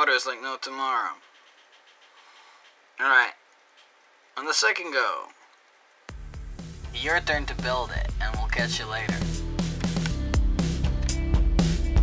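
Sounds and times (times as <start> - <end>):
quiet hiss: 0.0 - 10.2
scratchy ticking of spinning wire: 0.6 - 9.1.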